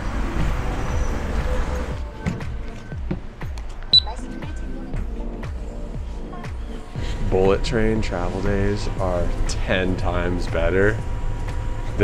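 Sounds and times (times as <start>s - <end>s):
background music with deep beat: 0.0s - 12.0s.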